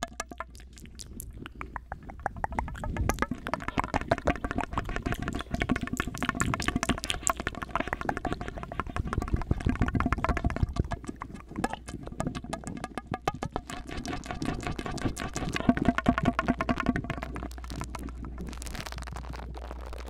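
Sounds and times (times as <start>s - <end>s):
wet mouth sounds through tube: 0.0s - 20.0s.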